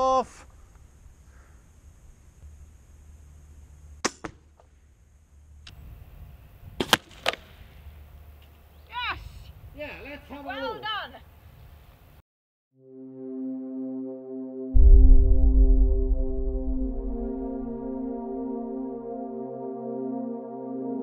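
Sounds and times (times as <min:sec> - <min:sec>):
crossbow release snap: 0:06.8 - 0:07.5.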